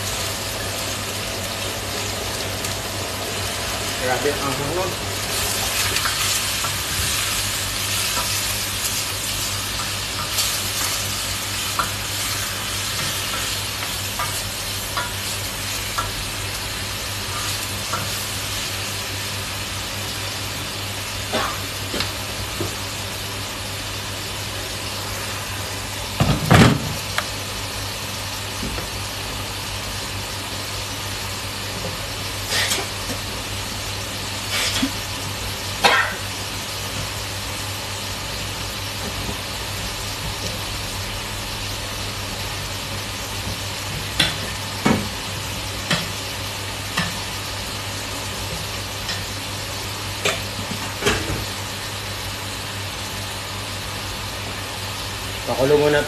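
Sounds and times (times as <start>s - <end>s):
meat sizzling in a pot: 0.0s - 56.0s.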